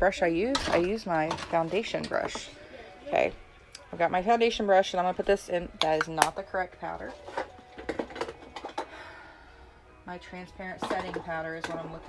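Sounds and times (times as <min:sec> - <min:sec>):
plastic containers clicking and clattering: 0:00.4 - 0:02.5, 0:07.0 - 0:09.0, 0:10.8 - 0:12.0.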